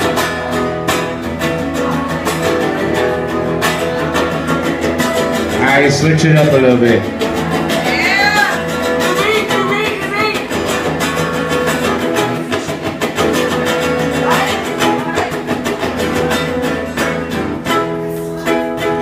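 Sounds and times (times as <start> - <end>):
guitar strumming: 0.0 - 19.0.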